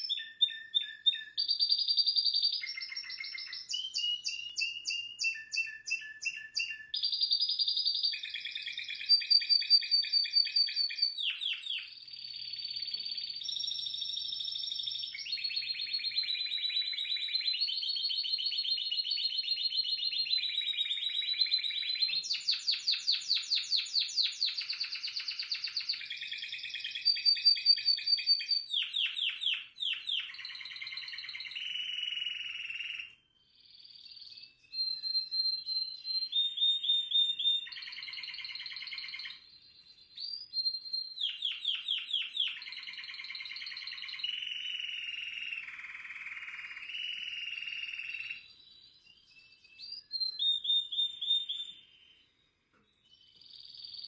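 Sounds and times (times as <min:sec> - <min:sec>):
canary singing trills: 0:00.0 - 0:54.0.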